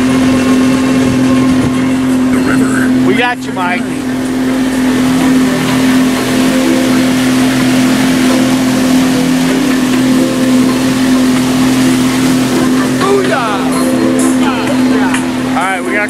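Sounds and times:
boat motor humming: 0.0 - 16.0
water rushing in wake: 0.0 - 16.0.

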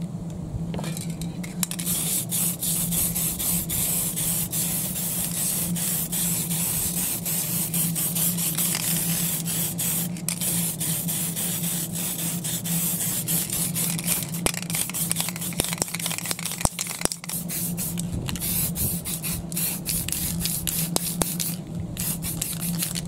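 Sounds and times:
steady low hum: 0.0 - 23.0
spray paint can hissing: 1.6 - 23.0.

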